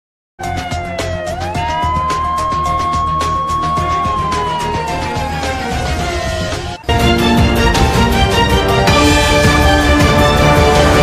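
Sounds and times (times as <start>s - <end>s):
siren-like synth tone: 0.4s - 6.9s.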